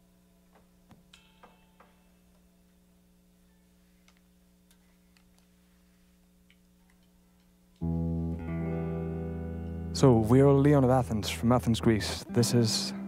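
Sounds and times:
amplifier electrical hum: 0.0s - 13.0s.

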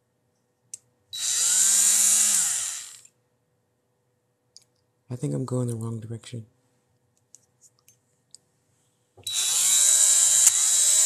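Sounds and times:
rotary tool motor spinning: 1.2s - 3.1s, 9.2s - 11.0s
rotary tool switch click: 9.8s - 10.6s.

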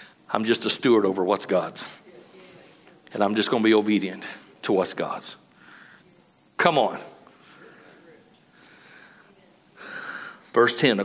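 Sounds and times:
man breathing in: 8.5s - 10.5s.

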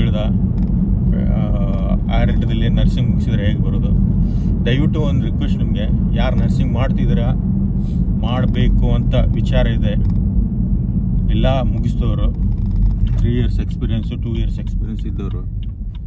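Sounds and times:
man talking: 0.0s - 0.3s, 1.1s - 4.0s, 4.7s - 7.4s, 8.2s - 10.0s, 11.3s - 12.4s, 13.1s - 15.5s
car driving rumble inside cabin: 0.0s - 16.0s.

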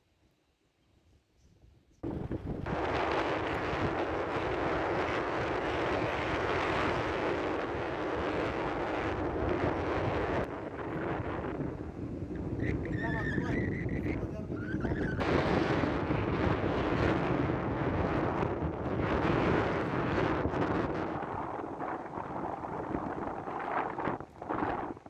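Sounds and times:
strong wind on microphone: 2.0s - 25.0s.

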